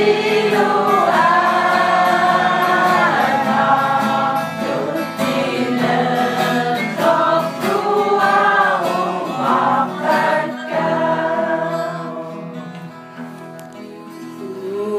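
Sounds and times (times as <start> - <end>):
choir singing: 0.0 - 12.6
instrumental backing: 0.0 - 14.9.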